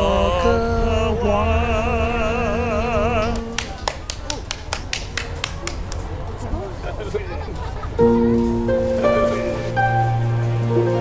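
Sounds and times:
faint voices: 0:03.1 - 0:11.0.

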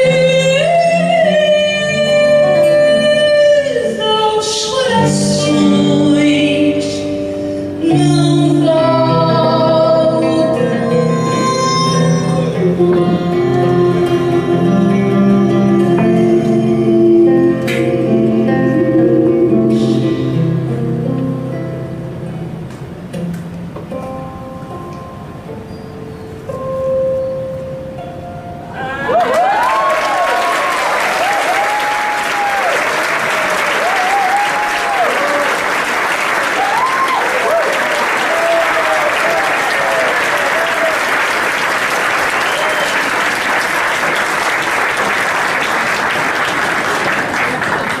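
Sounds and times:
held note of live song: 0:05.0 - 0:21.6
cheering shouts: 0:28.8 - 0:35.7, 0:36.5 - 0:41.2
audience applause: 0:28.8 - 0:48.0.

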